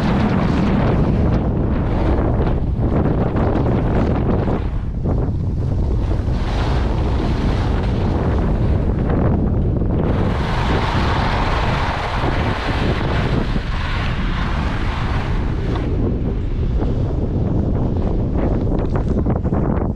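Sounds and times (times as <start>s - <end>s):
wind buffeting microphone: 0.0s - 19.9s
skis hissing over snow: 10.1s - 15.8s.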